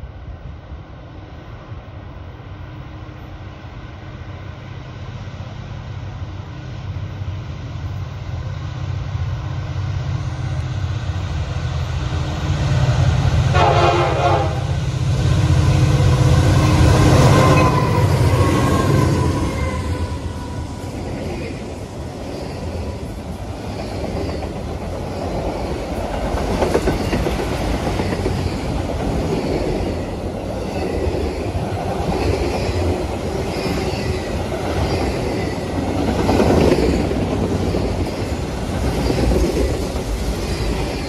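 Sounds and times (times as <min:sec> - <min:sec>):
train horn blast: 0:13.5 - 0:14.8.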